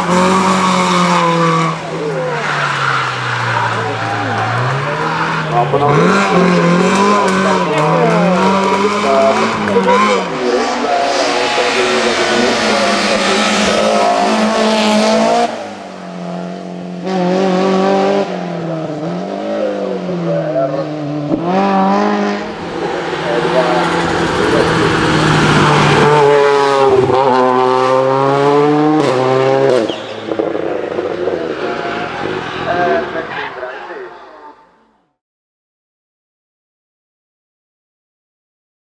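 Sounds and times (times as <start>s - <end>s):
rally cars revving hard: 0.0s - 34.6s.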